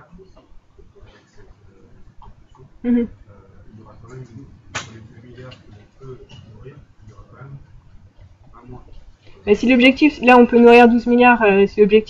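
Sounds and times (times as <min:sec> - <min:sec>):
faint speech off microphone: 0:00.0 - 0:07.7.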